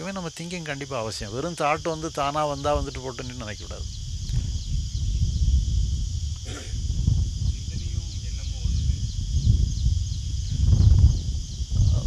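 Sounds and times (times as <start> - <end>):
high-pitched insect drone: 0.0 - 12.0
low rumble on microphone: 1.1 - 12.0.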